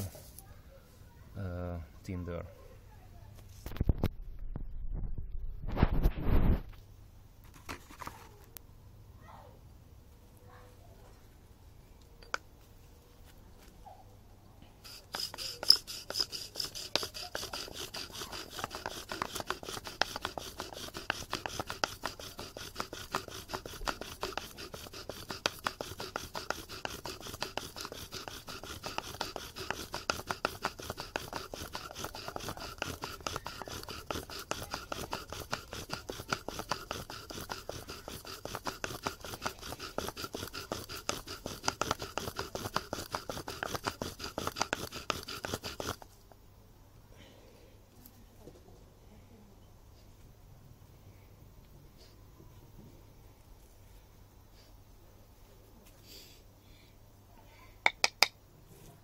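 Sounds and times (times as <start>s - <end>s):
bow drill wood grinding: 14.9s - 46.2s.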